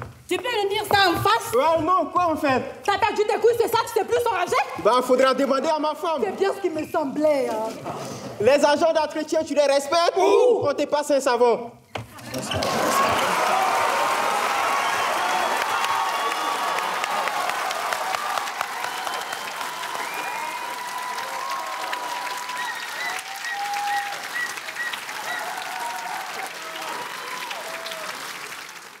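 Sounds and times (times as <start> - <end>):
audience applauding: 12.2 - 29.0.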